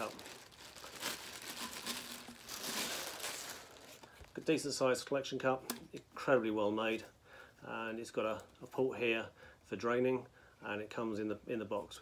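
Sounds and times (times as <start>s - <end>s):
plastic bag crinkling: 0.0s - 4.4s.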